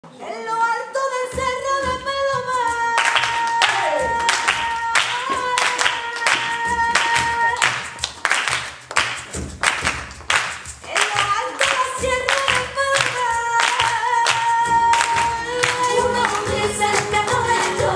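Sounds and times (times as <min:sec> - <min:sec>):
flamenco singing: 0:00.0 - 0:17.9
rhythmic hand clapping: 0:01.3 - 0:17.9.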